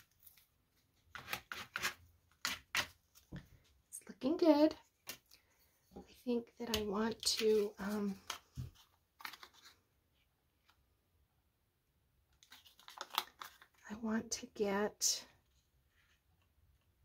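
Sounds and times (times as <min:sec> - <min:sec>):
paper rustling: 0:07.2 - 0:09.8, 0:12.4 - 0:13.8.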